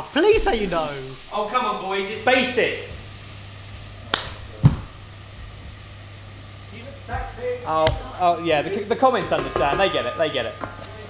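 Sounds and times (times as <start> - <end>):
low hum: 0.0 - 8.8
dull thump: 2.8 - 5.8.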